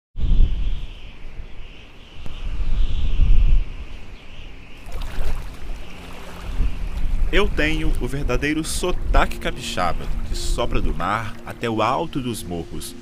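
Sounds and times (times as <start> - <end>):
wind buffeting microphone: 0.2 - 12.6
waves breaking: 4.8 - 13.0.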